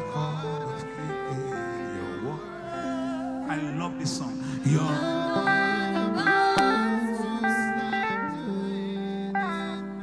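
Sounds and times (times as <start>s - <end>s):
band sustained chords: 0.0s - 10.0s.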